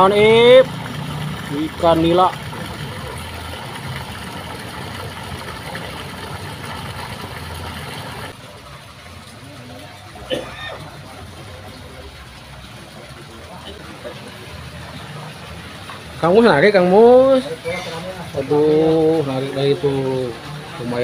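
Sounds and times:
low engine-like hum: 0:00.0 - 0:21.0.

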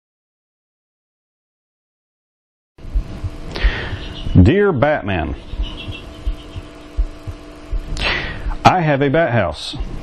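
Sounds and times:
soft low thumps: 0:02.8 - 0:08.6
low electrical hum: 0:02.8 - 0:10.0.

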